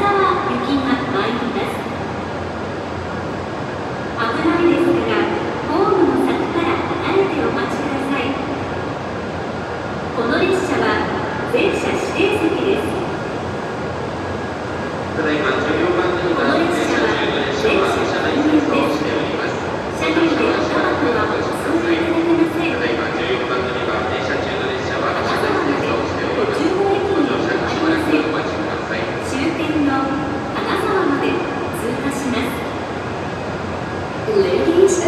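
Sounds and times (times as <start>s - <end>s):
train running into platform: 0.0s - 35.0s
platform announcement: 4.2s - 8.6s, 10.1s - 13.2s, 15.1s - 32.8s, 34.2s - 35.0s.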